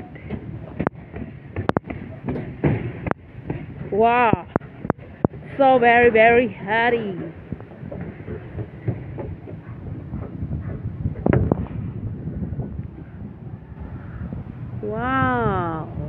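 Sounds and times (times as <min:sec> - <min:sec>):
low rumbling haze: 0:00.0 - 0:16.0.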